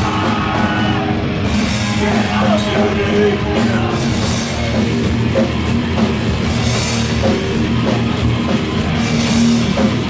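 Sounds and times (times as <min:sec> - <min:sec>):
distorted guitar and bass: 0:00.0 - 0:10.0
drum kit: 0:00.0 - 0:10.0.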